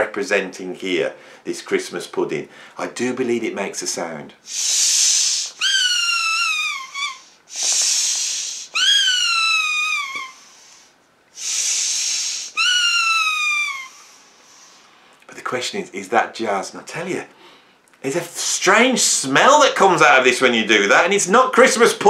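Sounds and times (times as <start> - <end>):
rush of air: 4.5 - 5.6, 7.5 - 8.7
squeaky toy whistle: 4.7 - 10.4, 11.4 - 14.0.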